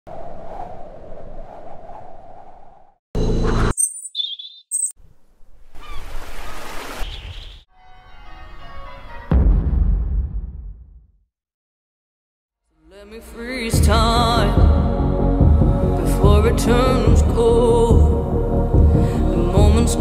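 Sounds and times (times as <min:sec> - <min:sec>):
loud deep boom: 0:09.3 - 0:11.1.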